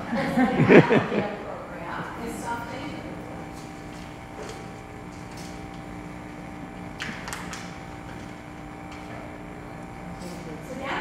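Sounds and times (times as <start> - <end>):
electrical hum of pa system: 0.0 - 11.0.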